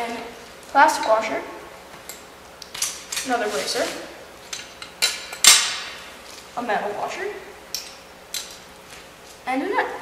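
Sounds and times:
sharp metal clanks: 5.0 - 6.0.

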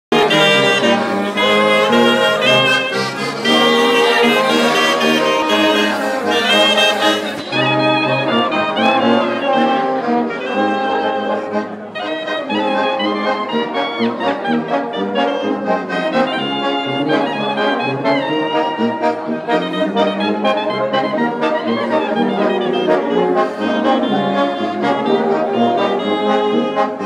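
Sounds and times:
tuba bass line: 0.1 - 27.0
wind band playing chords: 0.1 - 27.0.

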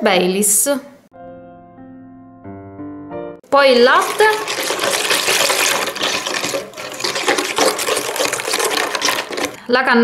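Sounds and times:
milk pouring and splashing: 3.6 - 9.7
whisk stirring in bowl: 3.6 - 9.7.

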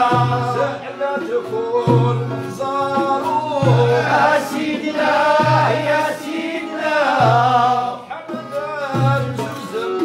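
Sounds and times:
men singing together: 0.0 - 10.0
oud: 0.0 - 10.0.

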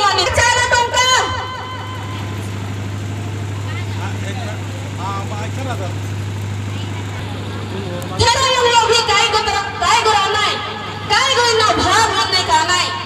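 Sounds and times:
woman's amplified voice: 0.0 - 2.4, 8.1 - 13.0
steady low hum: 0.0 - 13.0.

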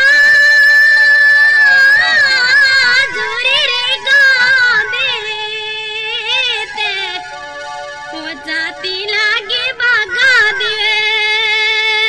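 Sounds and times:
woman singing folk song: 2.1 - 7.4, 8.1 - 12.0.

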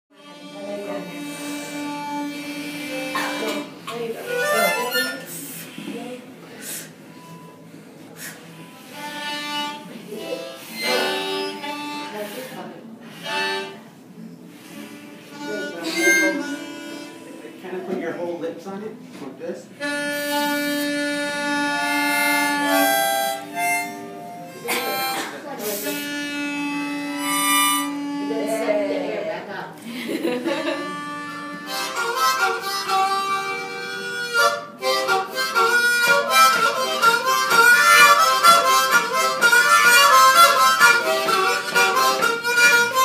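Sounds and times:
children playing harmonicas: 0.1 - 5.9, 8.2 - 13.9, 14.5 - 17.6, 19.8 - 28.8, 30.5 - 43.0.

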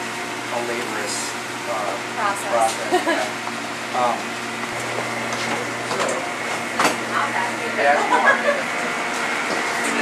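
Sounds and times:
ventilation machine hum: 0.0 - 10.0.

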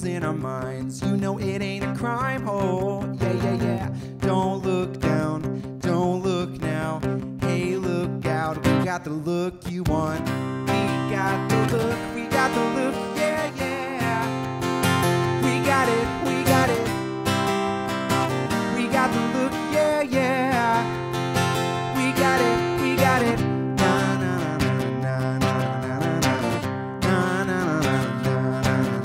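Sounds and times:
acoustic guitar strumming: 0.0 - 29.0
person singing: 0.0 - 29.0.

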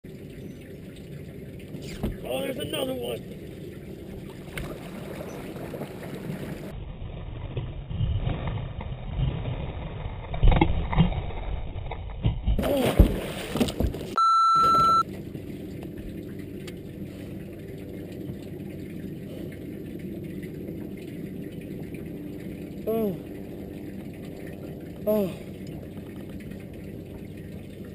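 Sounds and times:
water noise: 0.0 - 10.8, 12.6 - 27.9
wind: 0.0 - 27.9
high electronic beep: 14.2 - 15.0.

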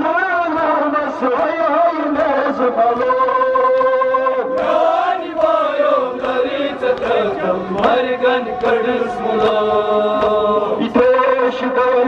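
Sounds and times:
men chanting together: 4.4 - 12.0.

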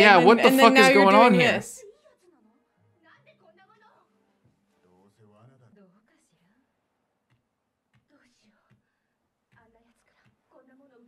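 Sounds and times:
faint low speech: 0.0 - 1.8.

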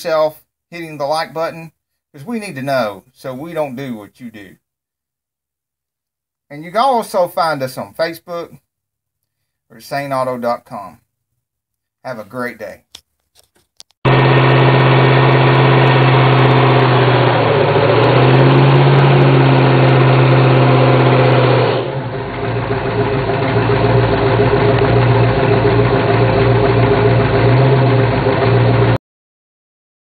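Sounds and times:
car engine at high revs: 14.1 - 29.0.

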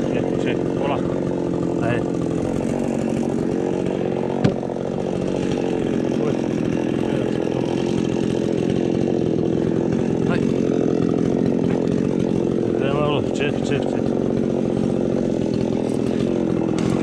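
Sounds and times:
chainsaw engine running: 0.0 - 17.0.

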